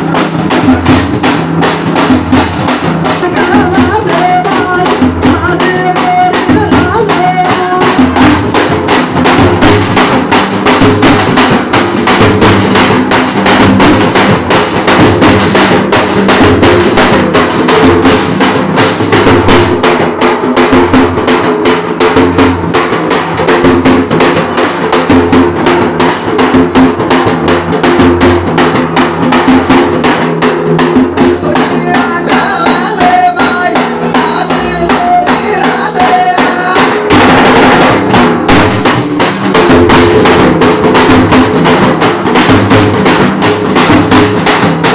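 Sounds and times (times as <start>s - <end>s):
drum ensemble fast rhythm: 0.0s - 44.9s.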